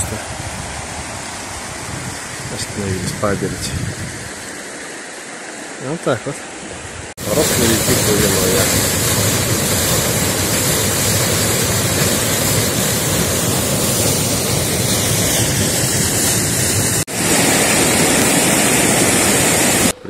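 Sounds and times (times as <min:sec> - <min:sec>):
waterfall rushing: 0:04.2 - 0:20.0.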